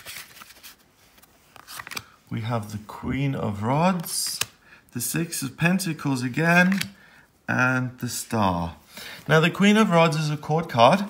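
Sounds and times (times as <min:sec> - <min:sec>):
cards flicking and clicking: 0:06.6 - 0:07.0.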